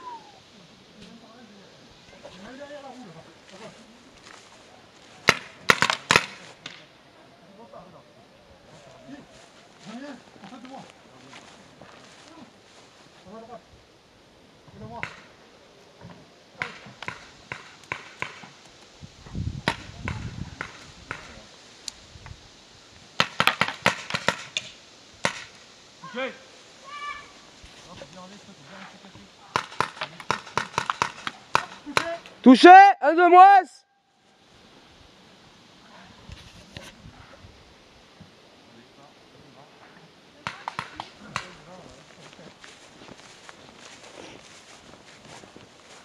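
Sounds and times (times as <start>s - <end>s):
faint voices calling: 0.0s - 19.1s
paintball markers firing: 5.2s - 6.8s, 29.5s - 32.2s.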